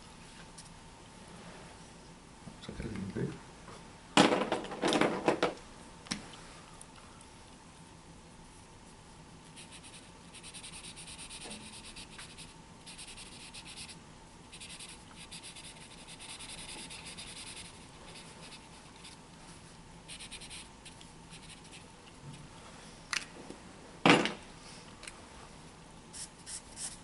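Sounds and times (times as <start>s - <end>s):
marker rubbing on paper: 9.6s - 19.2s, 20.1s - 21.8s, 26.2s - 27.0s.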